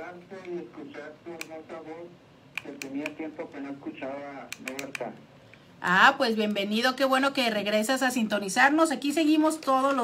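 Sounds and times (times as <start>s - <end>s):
man talking over telephone: 0.0s - 5.2s
sharp light clicks: 4.5s - 5.1s
woman talking: 5.8s - 10.0s.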